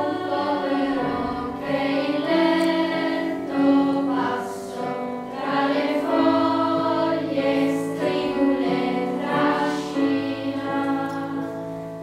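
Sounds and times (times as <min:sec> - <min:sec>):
children's choir singing: 0:00.0 - 0:12.0
piano accompaniment: 0:00.0 - 0:12.0.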